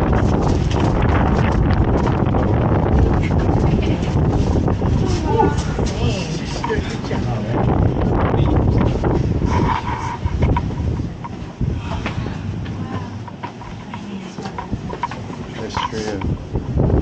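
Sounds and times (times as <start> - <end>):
low rumble of microphone handling: 0.0 - 17.0
indistinct voices: 4.9 - 16.4.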